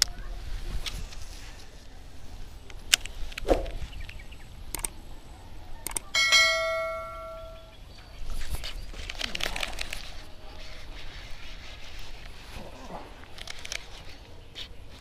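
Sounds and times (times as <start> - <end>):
bell-like notification ding: 6.2 - 7.7.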